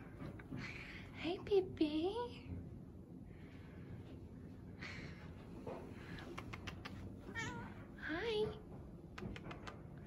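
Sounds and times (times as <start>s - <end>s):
cat meowing: 7.3s - 7.8s.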